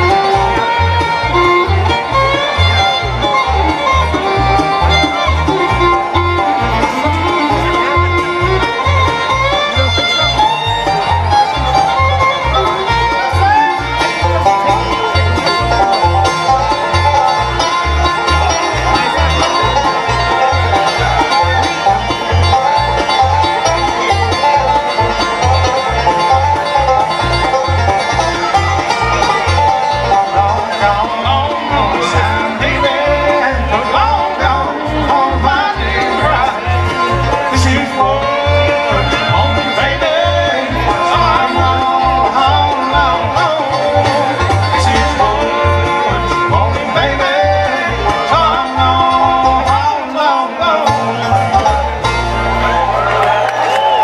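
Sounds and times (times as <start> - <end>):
acoustic guitar: 0.0 - 54.0
banjo lead: 0.0 - 54.0
fiddle: 0.0 - 54.0
mandolin: 0.0 - 54.0.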